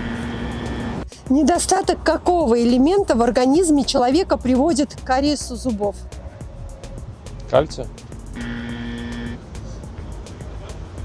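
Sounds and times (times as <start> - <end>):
background music with steady beat: 0.0 - 11.0
buzzing wrong-answer sound effect: 8.4 - 9.4.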